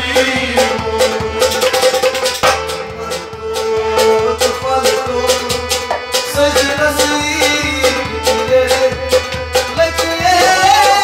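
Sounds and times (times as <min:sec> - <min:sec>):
hand drum beating: 0:00.0 - 0:11.0
harmonium chords: 0:00.0 - 0:11.0
men singing: 0:00.0 - 0:11.0.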